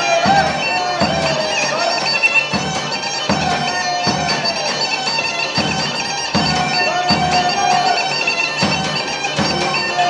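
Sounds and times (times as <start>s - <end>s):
bagpipe melody with drone: 0.0s - 10.0s
drum beat: 0.0s - 10.0s.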